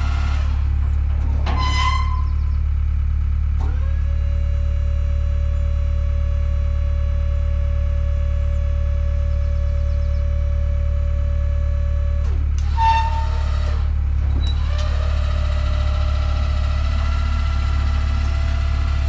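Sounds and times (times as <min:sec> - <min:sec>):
large engine rumbling: 0:00.0 - 0:19.0.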